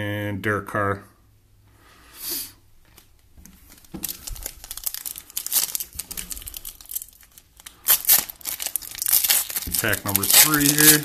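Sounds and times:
foil wrapper crinkling and tearing: 0:02.9 - 0:11.0.

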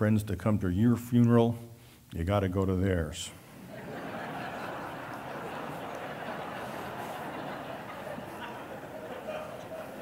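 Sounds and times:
audience laughing and murmuring: 0:03.6 - 0:10.0.

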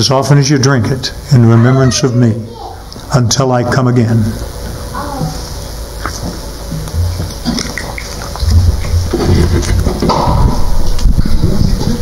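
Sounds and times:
low thuds on microphone: 0:08.4 - 0:12.0.

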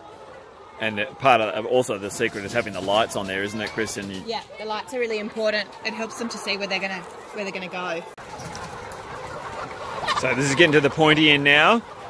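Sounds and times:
hens clucking: 0:00.3 - 0:12.0.

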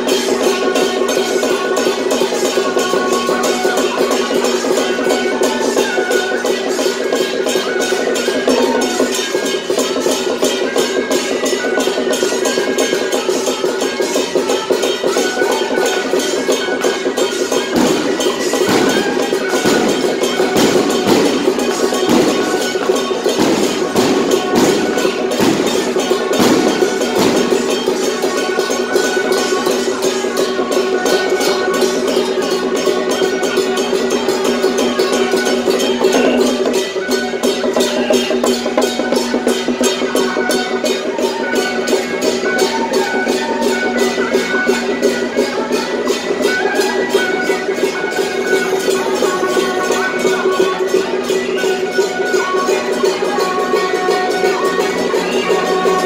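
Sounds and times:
drum gong and cymbal percussion: 0:00.0 - 0:56.0
procession band music: 0:00.1 - 0:56.0.

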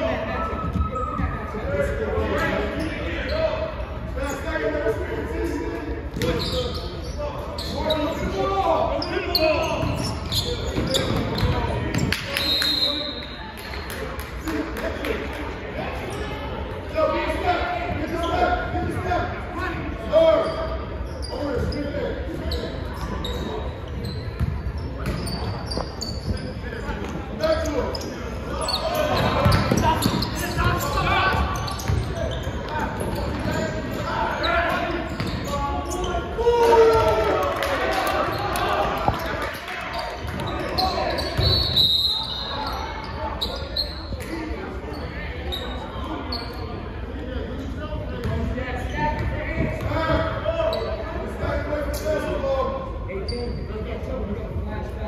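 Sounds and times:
players and spectators calling: 0:24.8 - 0:46.8.

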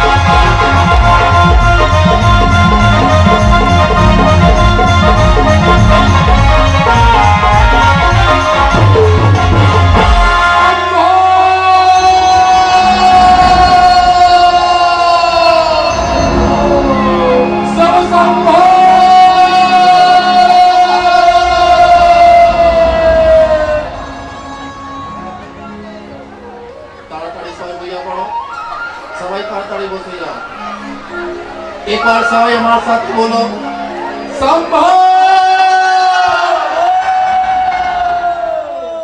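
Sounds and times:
man singing long high note: 0:05.6 - 0:25.9, 0:31.6 - 0:39.0.

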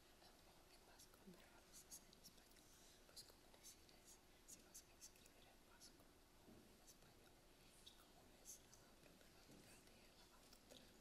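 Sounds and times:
people whispering: 0:06.8 - 0:11.0.

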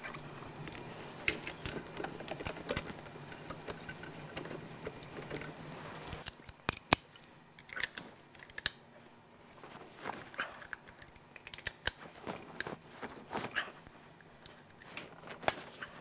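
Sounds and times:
metal hand tools clicking: 0:10.6 - 0:12.0.

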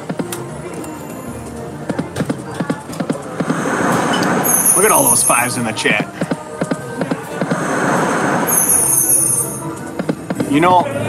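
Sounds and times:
electronic game music: 0:00.0 - 0:10.7
bright high jingle: 0:04.4 - 0:05.6, 0:08.5 - 0:09.7.

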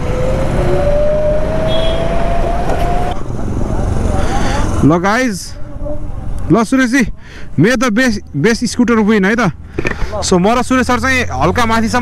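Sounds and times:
electric scooter motor whine: 0:00.0 - 0:02.8
wind and road noise rumble: 0:00.0 - 0:12.0.

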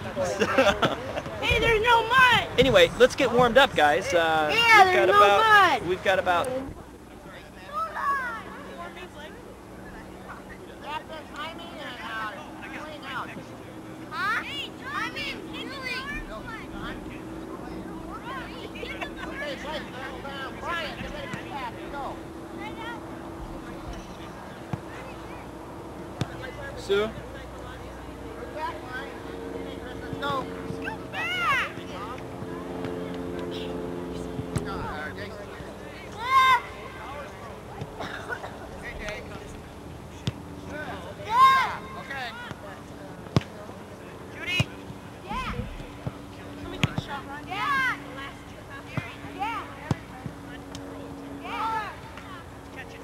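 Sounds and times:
indistinct voices talking: 0:00.0 - 0:53.0
steady low hum: 0:00.0 - 0:53.0
children shouting: 0:30.8 - 0:31.8, 0:36.1 - 0:36.8, 0:41.2 - 0:41.8.

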